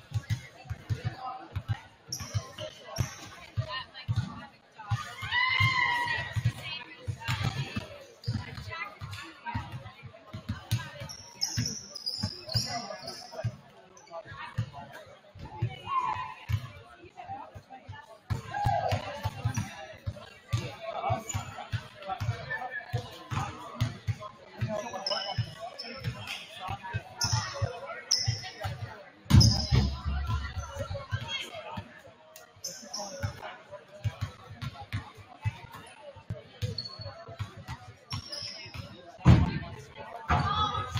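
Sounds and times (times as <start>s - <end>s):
sneaker squeaks: 1.6s - 4.3s, 7.2s - 9.8s, 10.4s - 14.1s, 20.6s - 21.8s, 24.6s - 31.4s, 32.6s - 33.5s, 36.6s - 37.5s, 38.1s - 39.0s.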